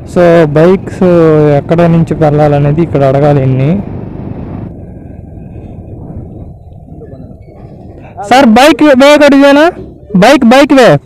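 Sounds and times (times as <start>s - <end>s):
motorcycle engine and wind rumble: 0.0s - 11.0s.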